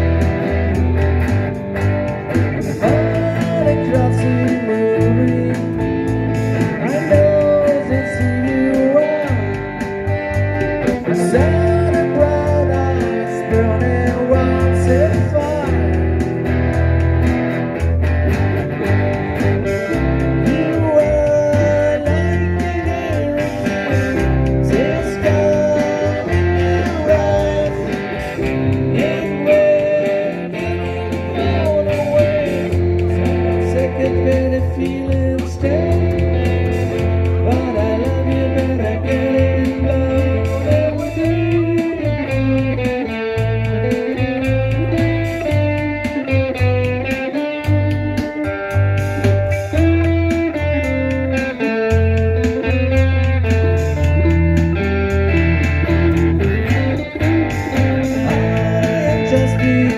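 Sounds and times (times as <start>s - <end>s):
acoustic guitar band playing rock: 0.0s - 59.9s.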